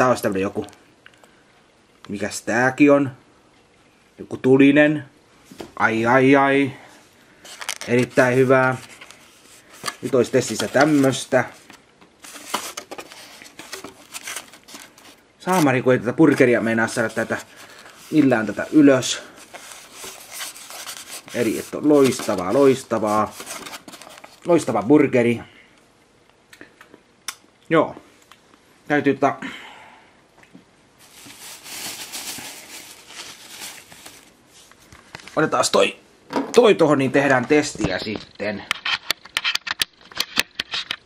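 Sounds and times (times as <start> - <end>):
rustling takeaway container: 7.4 - 24.8, 31.0 - 35.4.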